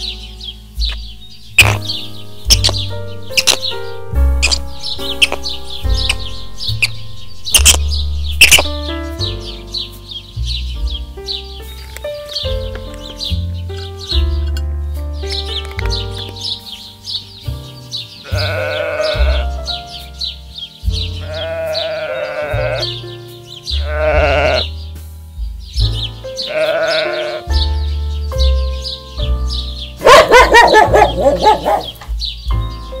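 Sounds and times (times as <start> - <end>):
music with steady beat: 0.0 - 17.9, 19.2 - 21.3, 24.6 - 26.4, 28.4 - 33.0
loud animal cry: 18.2 - 19.9, 21.1 - 23.0, 23.7 - 24.8, 26.4 - 27.6, 30.0 - 32.0
young animal bleating: 18.2 - 19.9, 21.1 - 23.1, 23.7 - 24.8, 26.4 - 27.6.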